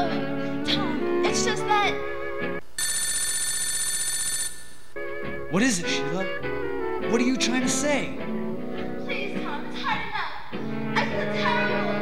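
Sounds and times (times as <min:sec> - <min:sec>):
telephone ringing: 0:02.8 - 0:05.0.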